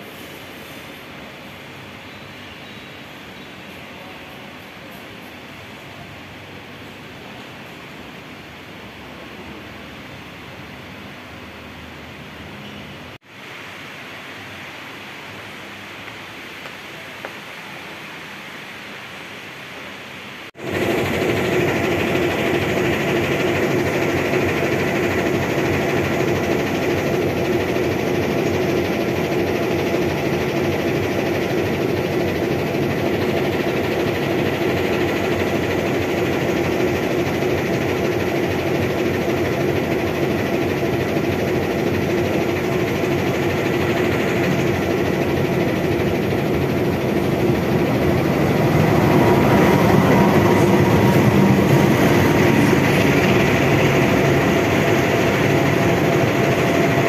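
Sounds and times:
locomotive engine hum: 20.6s - 57.0s.

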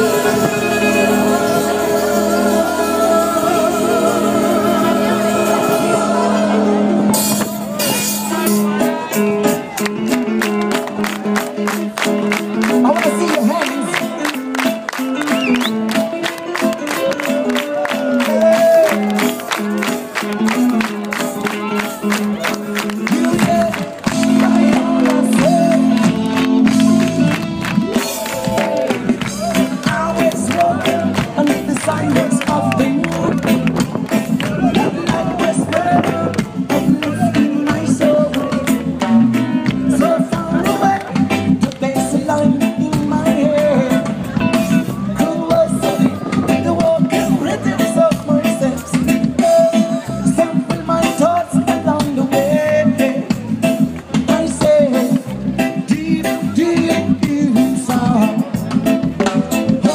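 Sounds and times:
person singing: 0.0s - 9.8s, 12.6s - 19.4s, 20.4s - 59.9s
live band playing: 0.0s - 59.9s.

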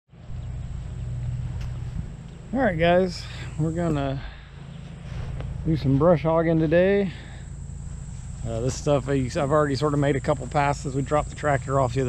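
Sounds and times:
tractor engine idling: 0.1s - 12.0s.

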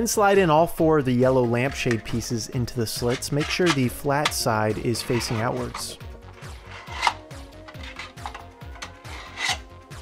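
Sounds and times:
plastic panels scraping: 3.0s - 9.6s.

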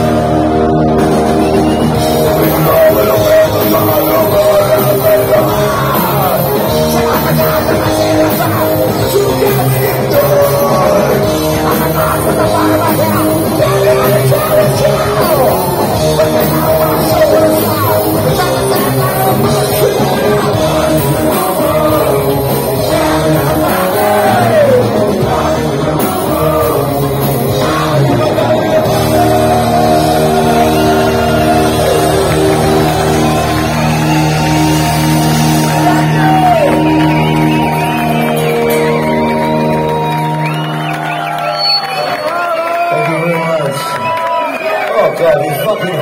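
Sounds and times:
live heavy metal band: 0.0s - 44.2s
crowd shouting: 0.0s - 46.0s.

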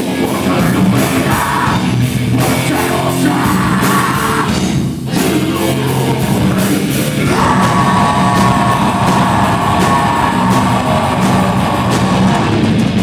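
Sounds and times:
live metal band playing: 0.0s - 13.0s
vocalist yelling long note: 5.4s - 12.6s.

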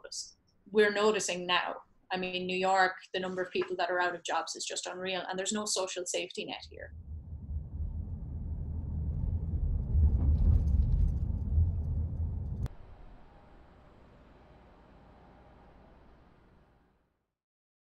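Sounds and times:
faint outdoor hum: 6.6s - 17.1s.

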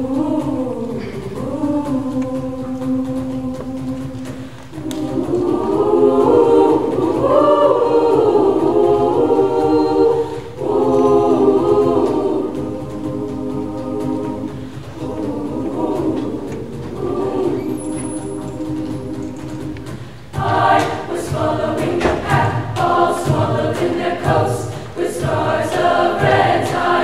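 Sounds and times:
girls' choir singing: 0.0s - 27.0s.

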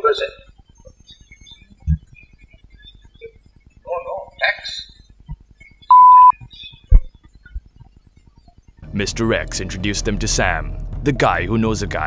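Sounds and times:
censor beep: 5.8s - 7.0s.

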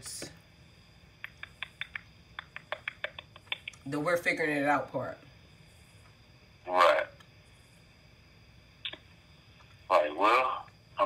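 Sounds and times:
person speaking: 9.9s - 10.7s.

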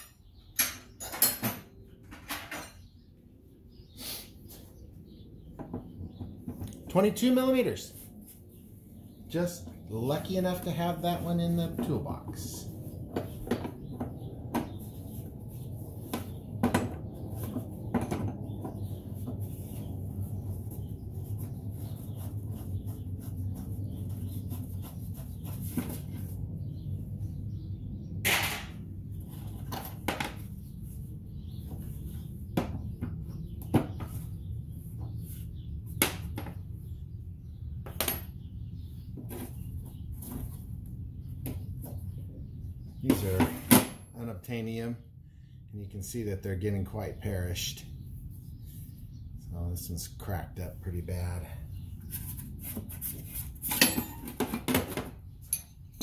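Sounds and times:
steady low hum: 4.7s - 54.3s.

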